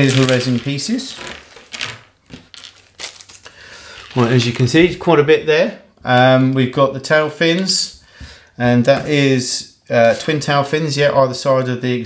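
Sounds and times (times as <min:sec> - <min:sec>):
plastic bag crinkling: 0:00.0 - 0:05.1.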